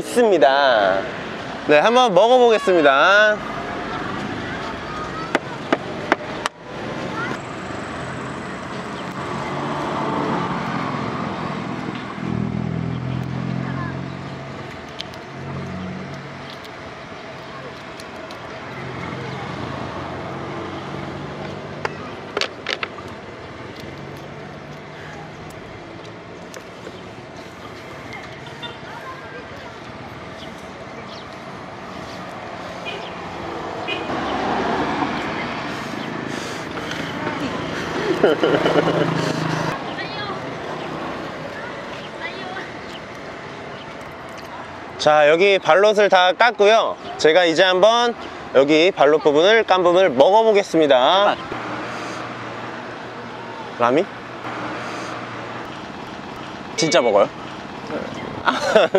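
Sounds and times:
vehicle engines passing by: 0:00.0 - 0:58.9
sharp clicks: 0:14.6 - 0:16.8.

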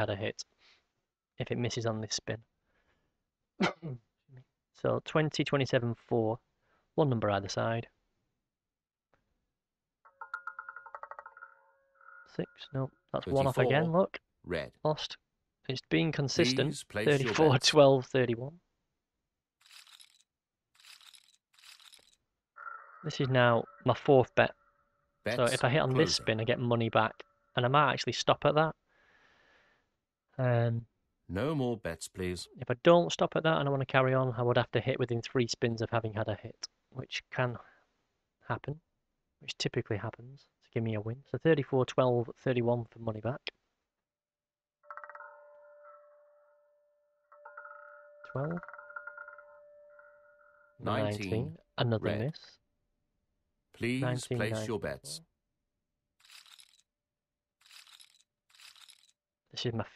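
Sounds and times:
rattle of electronic ticks: 0:10.1 - 0:11.7, 0:19.6 - 0:20.2, 0:20.8 - 0:22.2, 0:56.2 - 0:56.8, 0:57.6 - 0:59.1
casino chips clattering: 0:19.6 - 0:20.2, 0:20.8 - 0:22.2, 0:56.2 - 0:56.8, 0:57.6 - 0:59.2.

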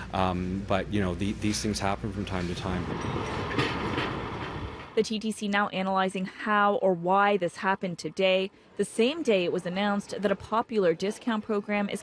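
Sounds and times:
subway train rushing on rails: 0:02.4 - 0:05.0.

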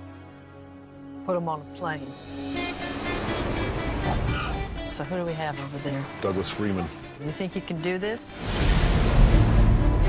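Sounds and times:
sustained trailer music note: 0:02.0 - 0:07.1.

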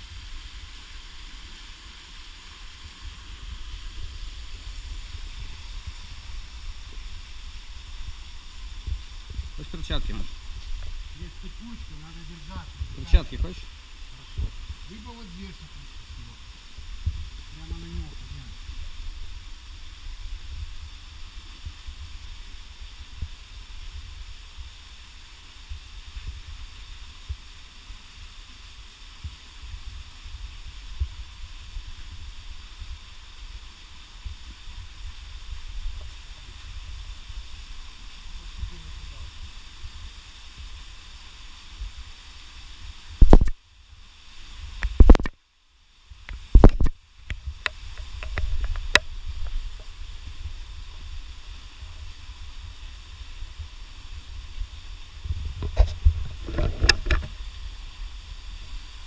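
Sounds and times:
steady hiss: 0:00.0 - 0:59.0
camera handling noise: 0:43.3 - 0:43.6, 0:45.0 - 0:45.3.

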